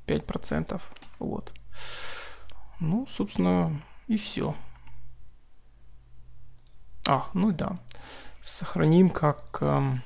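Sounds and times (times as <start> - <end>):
low electrical hum: 0.0 - 10.0
computer mouse clicks: 0.9 - 1.7, 6.5 - 8.0.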